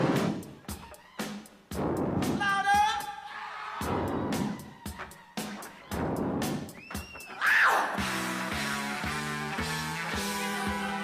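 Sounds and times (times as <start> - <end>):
funk band playing: 0.0 - 3.1, 3.8 - 7.3, 7.9 - 11.0
loud high cry: 7.2 - 8.0.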